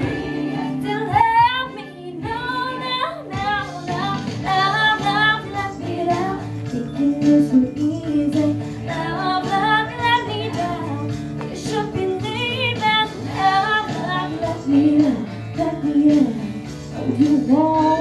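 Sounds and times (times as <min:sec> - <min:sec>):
girl singing into microphone: 0:00.0 - 0:18.0
instrumental accompaniment: 0:00.0 - 0:18.0.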